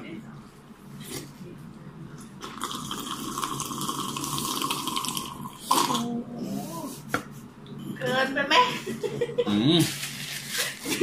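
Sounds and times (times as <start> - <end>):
person slurping from a cup: 2.4 - 6.6.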